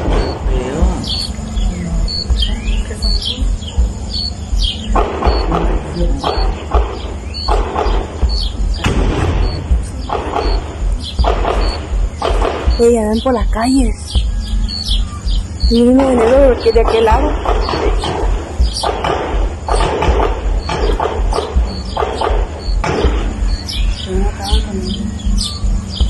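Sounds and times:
birds chirping: 0.0s - 26.0s
wind on microphone: 0.0s - 26.0s.

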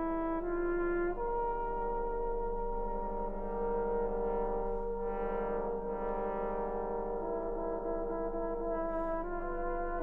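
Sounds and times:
brass band sustained chords: 0.0s - 10.0s.

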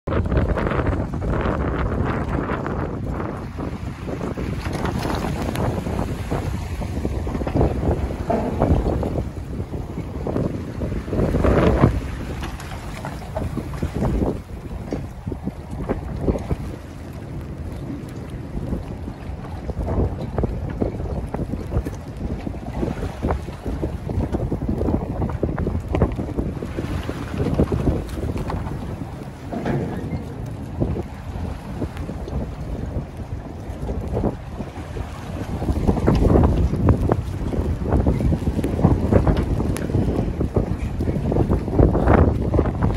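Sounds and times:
wind buffeting microphone: 0.0s - 42.9s
water slapping against docks: 0.1s - 42.9s.

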